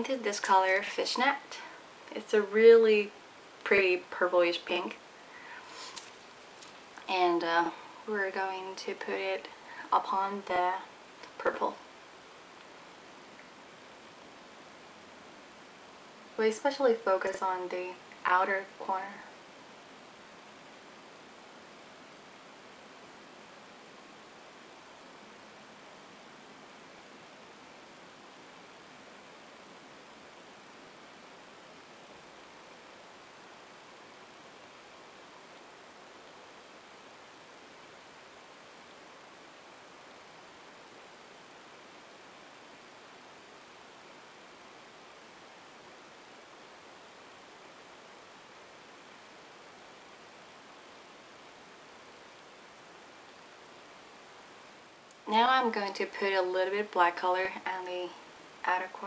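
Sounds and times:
faint background hiss: 0.0 - 59.0.

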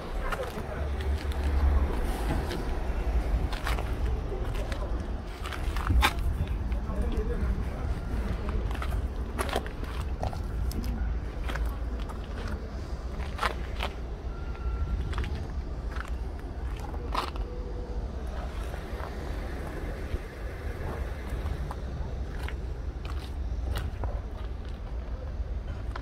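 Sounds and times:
low outdoor rumble: 0.0 - 26.0.

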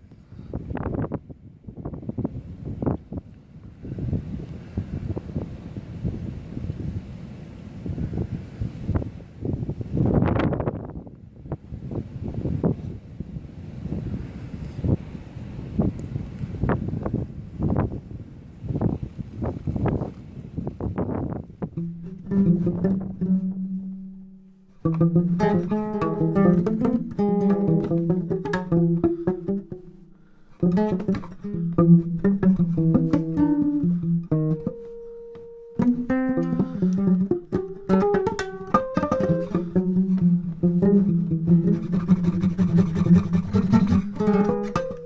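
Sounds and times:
wind buffeting microphone: 0.3 - 23.8.

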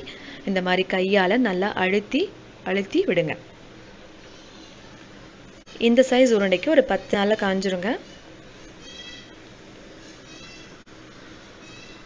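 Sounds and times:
low background noise: 0.0 - 12.0
faint high-pitched animal calls: 8.8 - 9.4, 10.2 - 10.8, 11.6 - 12.0.

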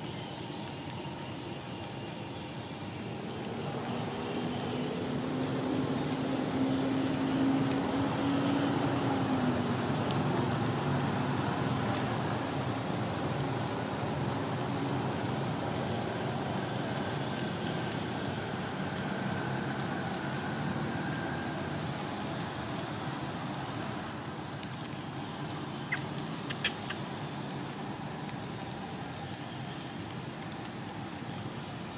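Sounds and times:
outdoor background noise: 0.0 - 31.9.

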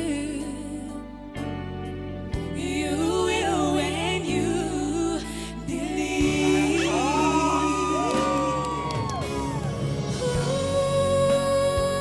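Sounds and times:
women singing a ballad duet: 0.0 - 1.6, 2.4 - 12.0
backing music: 0.0 - 12.0
panel whooping and cheering: 6.2 - 10.5.

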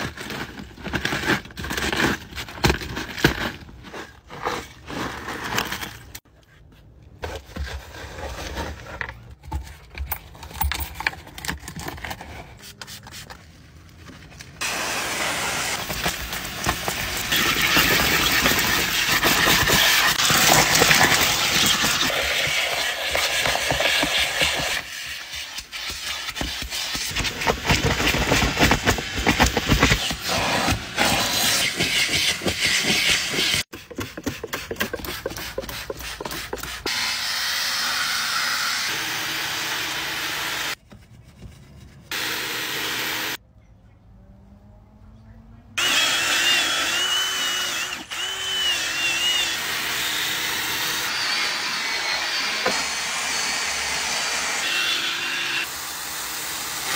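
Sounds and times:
upholstery extractor running: 14.6 - 24.8
drill spinning scrub brush: 14.6 - 40.8, 42.1 - 43.4, 45.8 - 56.9.

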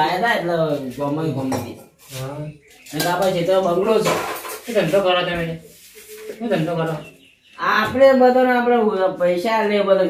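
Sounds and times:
metal pots clattering: 2.8 - 5.0.

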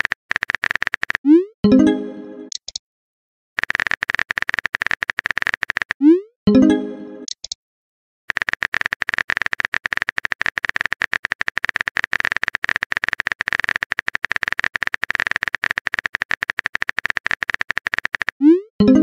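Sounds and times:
rapid keyboard typing clicks: 0.0 - 1.3, 3.6 - 6.0, 8.3 - 18.6.

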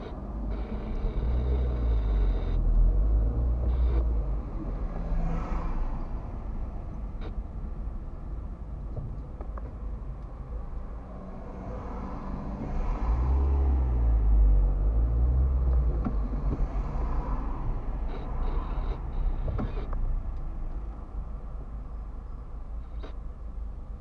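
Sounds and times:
traffic drone: 0.0 - 24.0.

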